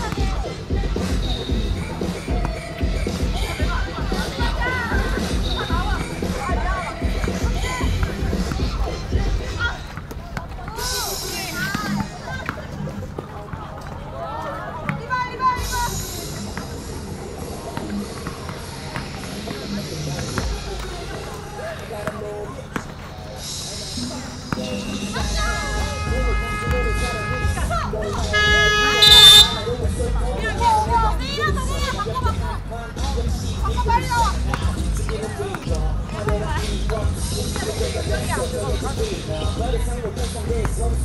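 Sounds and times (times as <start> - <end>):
background music: 0.0 - 41.0
players' voices: 0.0 - 41.0
shoe squeaks: 5.0 - 6.2, 28.2 - 29.8
referee's whistle blast: 28.3 - 29.8.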